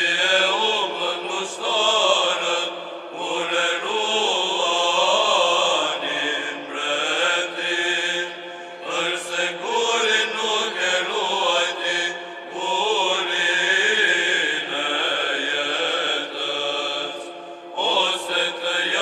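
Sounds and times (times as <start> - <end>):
voices chanting slow melody: 0.0 - 19.0.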